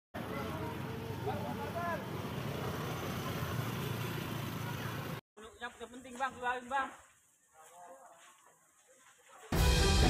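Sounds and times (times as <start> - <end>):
motorcycle engines rumbling: 0.2 - 5.2.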